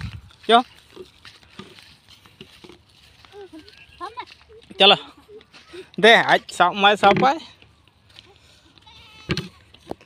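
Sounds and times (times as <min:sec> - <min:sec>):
goat bleating faintly: 0:08.8 - 0:09.8.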